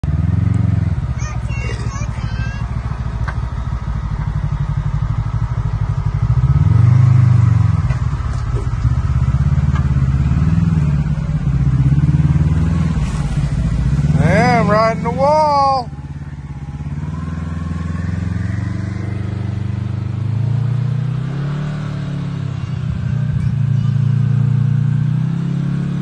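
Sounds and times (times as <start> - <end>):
engine running at low revs: 0.0 - 26.0.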